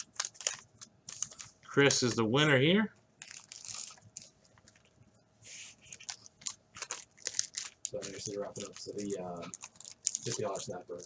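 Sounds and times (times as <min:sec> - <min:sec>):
card pack wrapper crinkling: 0:00.0 - 0:02.3, 0:03.2 - 0:04.9, 0:05.8 - 0:11.0.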